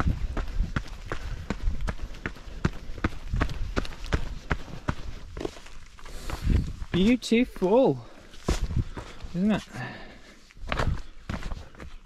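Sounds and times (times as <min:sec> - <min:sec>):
running footsteps on dirt trail: 0:00.0 - 0:12.0.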